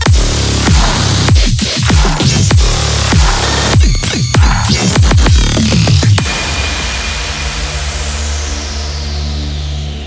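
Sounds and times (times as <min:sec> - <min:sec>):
heavy sustained bass: 0:04.4 - 0:10.0.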